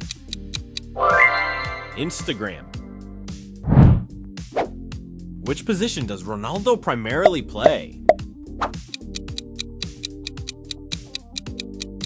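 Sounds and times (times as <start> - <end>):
countdown music: 0.1 - 3.0, 8.8 - 12.0
quick ticking: 8.8 - 12.0.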